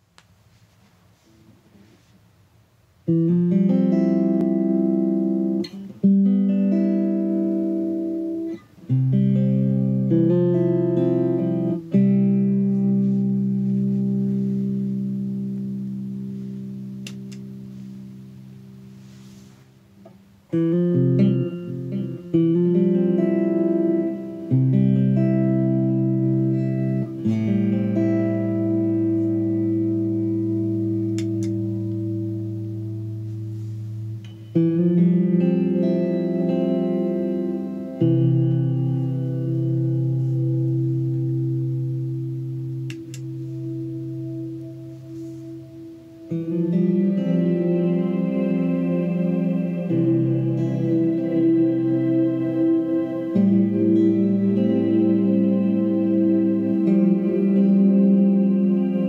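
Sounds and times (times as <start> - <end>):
electric guitar sustained chords: 3.0 - 59.0.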